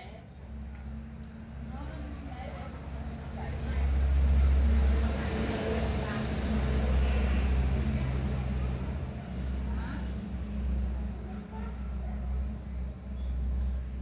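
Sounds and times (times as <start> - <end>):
low motor hum: 0.0 - 14.0.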